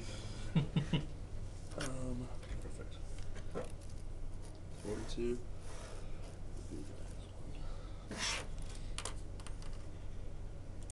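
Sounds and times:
steady low hum: 0:00.0 - 0:10.9
pen scratching on paper: 0:08.1 - 0:08.5.

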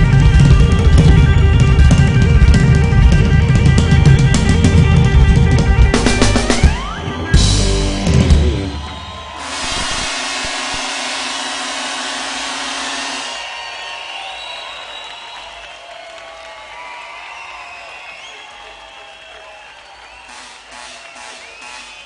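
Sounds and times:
crowd cheering and applauding: 0:00.0 - 0:22.0
crowd shouts: 0:04.3 - 0:22.0
band final chord and cymbal: 0:09.4 - 0:13.5.

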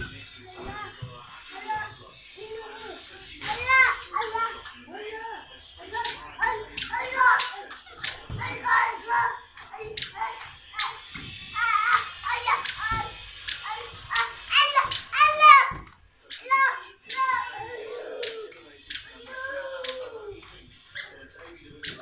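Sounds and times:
toddler babbling: 0:01.6 - 0:05.4, 0:11.6 - 0:18.5, 0:19.1 - 0:20.4.

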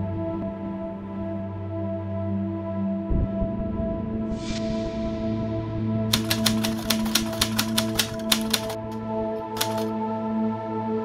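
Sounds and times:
ambient music with held tones: 0:00.0 - 0:11.0
typewriter keys clacking: 0:06.1 - 0:09.0, 0:09.6 - 0:09.9.

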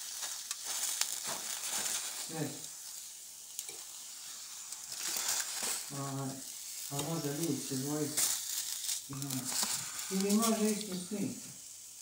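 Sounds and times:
fork scraping and clicking on foil: 0:00.0 - 0:02.2, 0:04.7 - 0:05.9, 0:06.8 - 0:11.0
mushrooms sizzling on foil: 0:00.0 - 0:12.0.

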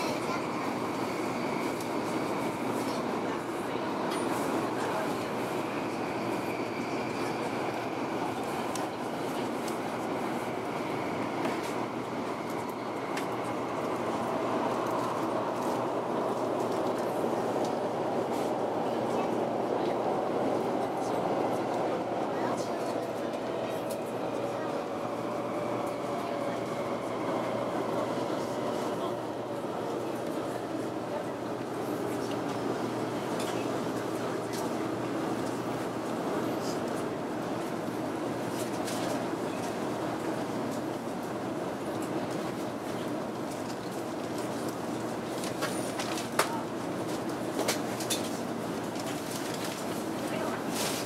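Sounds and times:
train rumble and hiss: 0:00.0 - 0:51.0.

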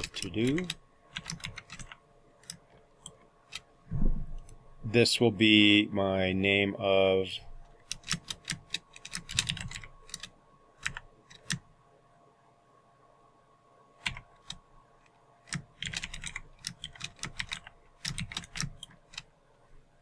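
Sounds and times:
typing on computer keyboard: 0:00.0 - 0:03.6, 0:07.8 - 0:11.6, 0:14.0 - 0:14.6, 0:15.5 - 0:19.3.

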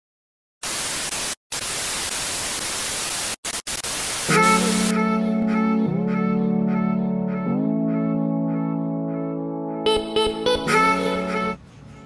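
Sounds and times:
static white noise hiss: 0:00.6 - 0:05.0.

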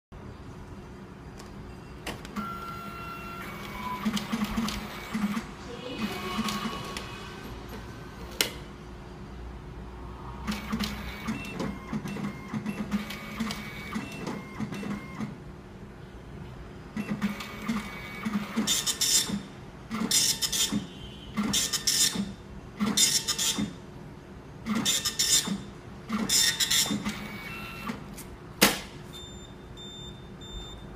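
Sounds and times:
printer buzzing print passes: 0:02.4 - 0:08.4, 0:10.5 - 0:15.4, 0:17.0 - 0:23.8, 0:24.7 - 0:28.0.

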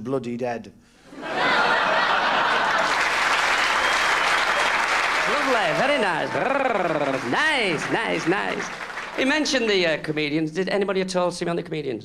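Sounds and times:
studio audience applauding: 0:01.2 - 0:10.3.

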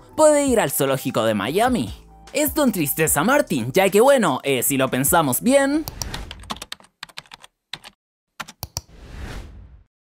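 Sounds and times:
computer keyboard typing: 0:05.8 - 0:08.9.

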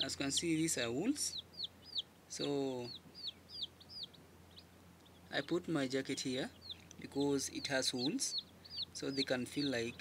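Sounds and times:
baby chicks peeping: 0:00.0 - 0:10.0.

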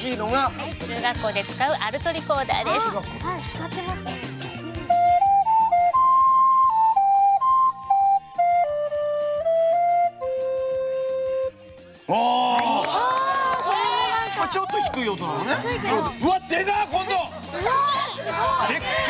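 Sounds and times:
alto recorder melody: 0:04.6 - 0:12.0.

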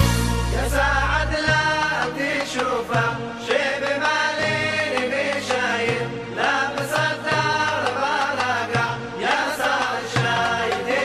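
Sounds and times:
steady bass: 0:00.0 - 0:02.0.

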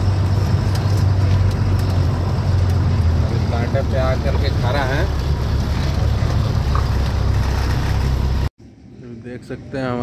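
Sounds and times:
truck diesel engine rumbling: 0:00.0 - 0:08.8.

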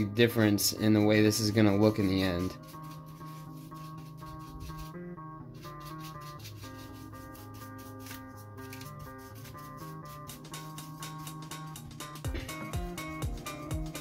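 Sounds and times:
background music with plucked notes: 0:00.0 - 0:14.0
bristle brush scrubbing foam: 0:02.5 - 0:04.9, 0:05.6 - 0:11.5.

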